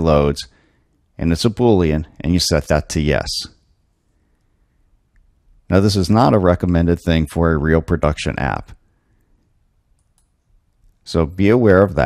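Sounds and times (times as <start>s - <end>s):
computer mouse click: 9.9s - 11.0s.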